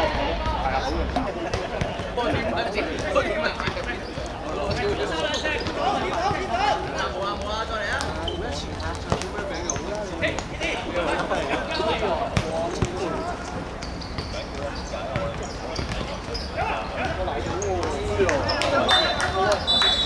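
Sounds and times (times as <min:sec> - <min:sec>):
players calling: 0:00.0 - 0:20.0
ball kicked and bouncing: 0:14.2 - 0:16.2.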